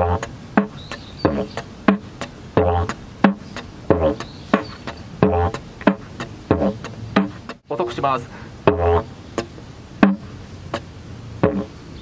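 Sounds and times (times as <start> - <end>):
didgeridoo beatbox pattern: 0.0 - 7.6, 8.6 - 10.8, 11.4 - 11.8.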